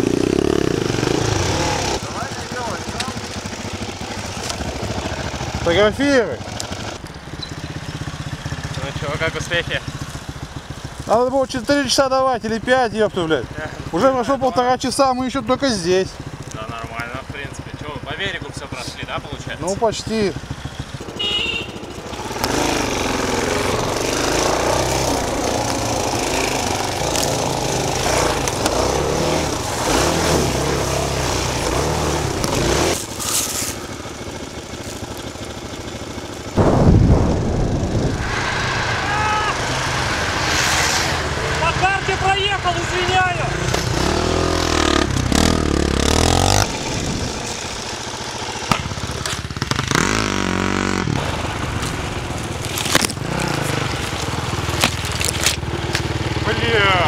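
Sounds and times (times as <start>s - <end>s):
motorcycle engine revving: 0.0s - 14.4s, 15.8s - 57.0s
loud low thud: 36.6s - 39.7s.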